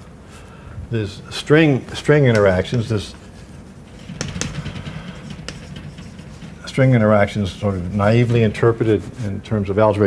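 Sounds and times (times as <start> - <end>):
chalk tapping on blackboard: 2.3 - 8.6.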